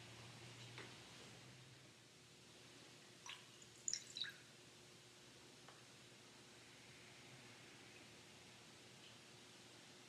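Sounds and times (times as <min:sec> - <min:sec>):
water dripping into a basin: 0:03.2 - 0:04.5.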